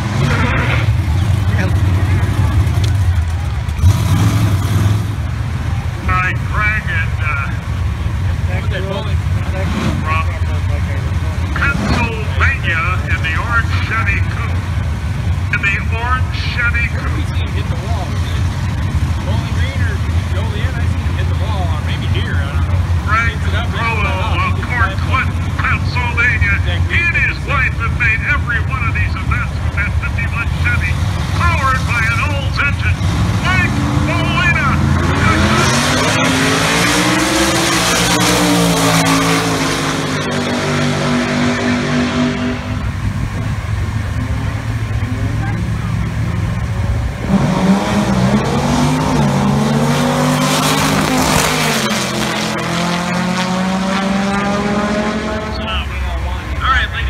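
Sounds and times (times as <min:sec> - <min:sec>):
drag racing car engines revving: 0:00.0 - 0:57.0.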